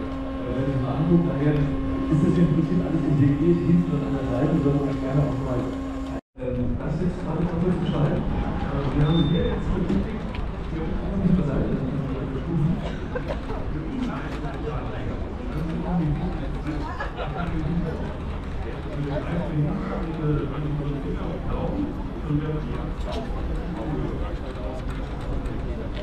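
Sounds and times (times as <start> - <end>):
murmur of conversation: 0.0 - 26.0.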